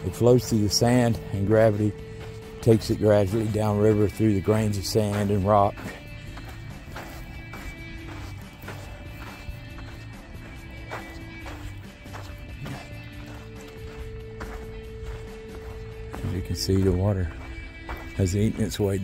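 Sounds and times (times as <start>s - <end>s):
footsteps on sand and gravel: 0.0s - 19.0s
soft background music: 0.0s - 19.0s.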